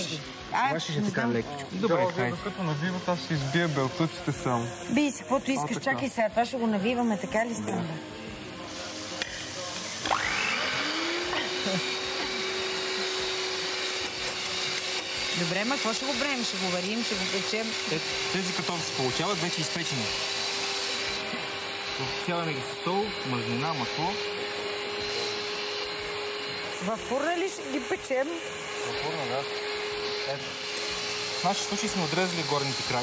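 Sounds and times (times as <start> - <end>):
electric mixer whirring: 0.0 - 33.0
small electric motor hum: 0.0 - 33.0.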